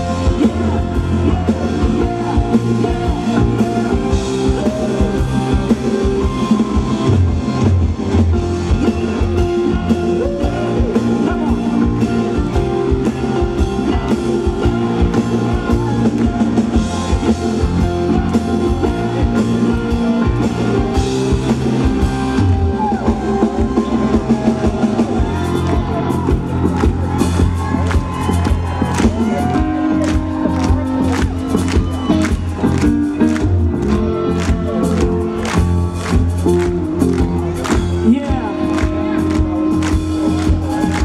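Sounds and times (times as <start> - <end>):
person singing: 0.0 - 6.6, 8.7 - 16.5
drum kit: 0.0 - 41.0
electric guitar: 0.0 - 41.0
keyboards: 0.0 - 41.0.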